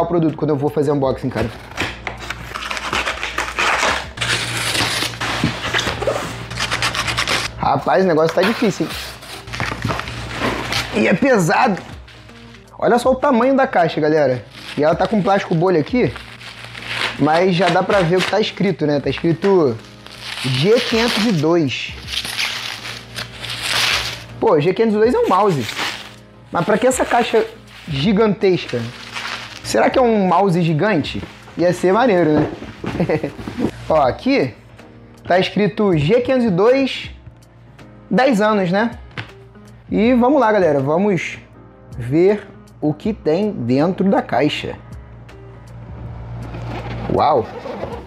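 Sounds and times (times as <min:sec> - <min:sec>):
bubble wrap crinkling: 0:01.4 - 0:07.5, 0:08.3 - 0:12.7, 0:14.3 - 0:24.4, 0:25.1 - 0:30.0, 0:31.0 - 0:33.9
knife slicing tape and cardboard: 0:01.4 - 0:07.5, 0:16.0 - 0:24.3, 0:25.3 - 0:28.0
cardboard box rubbing: 0:01.5 - 0:07.5, 0:08.4 - 0:11.0, 0:31.2 - 0:33.8, 0:46.5 - 0:48.0.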